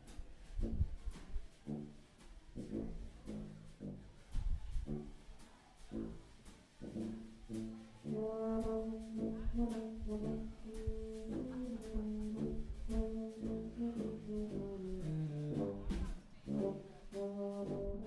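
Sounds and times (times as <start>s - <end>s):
low bass line: 0.0s - 2.0s, 2.6s - 5.3s, 5.9s - 18.0s
brass band horn chords: 1.6s - 18.0s.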